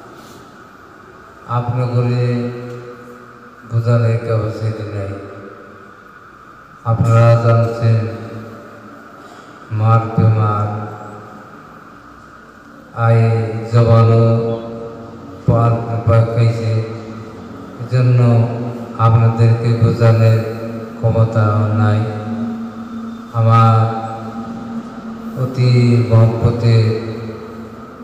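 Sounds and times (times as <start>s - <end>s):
man chanting into a microphone: 6.8s - 8.5s, 9.7s - 11.1s, 12.9s - 27.8s.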